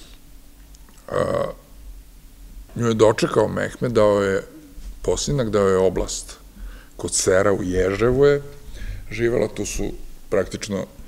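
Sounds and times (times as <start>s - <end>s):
low steady hum: 0.0s - 11.0s
man's guttural vocal sound: 1.0s - 1.7s.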